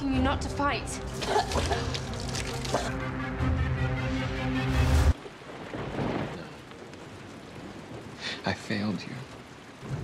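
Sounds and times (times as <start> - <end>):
rain hiss: 4.2 - 10.0.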